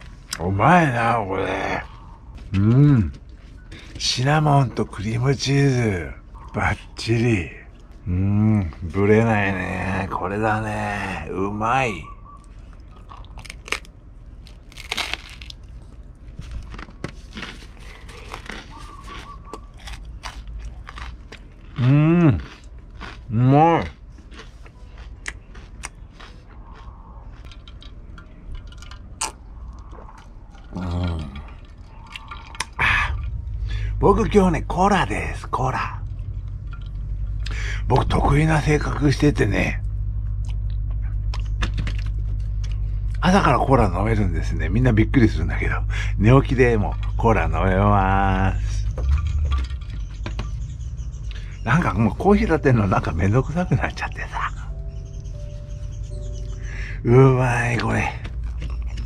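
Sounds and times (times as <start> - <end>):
low hum: 0.0 - 59.0
crunching and chewing toast: 12.4 - 33.9, 36.0 - 38.2, 39.8 - 43.5, 57.7 - 59.0.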